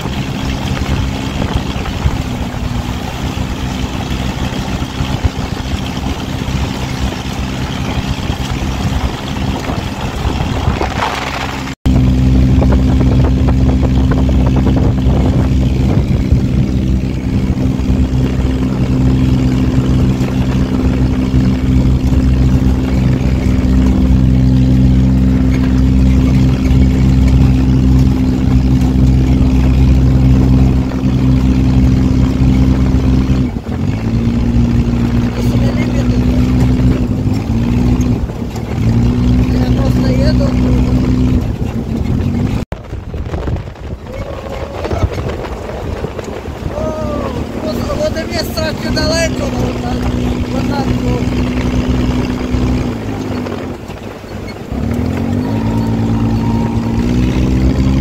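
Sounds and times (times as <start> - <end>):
dune buggy engine running: 0.0 - 58.0
road noise: 0.0 - 58.0
wind noise: 0.0 - 58.0.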